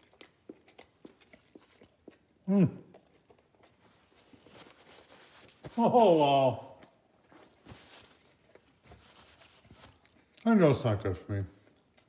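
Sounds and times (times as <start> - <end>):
mouth noises from chewing: 0.0 - 4.7, 8.2 - 10.6, 11.6 - 12.0.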